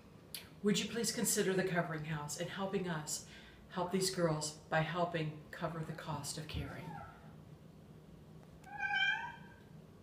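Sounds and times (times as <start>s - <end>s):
high-pitched animal call: 8.6s - 9.6s.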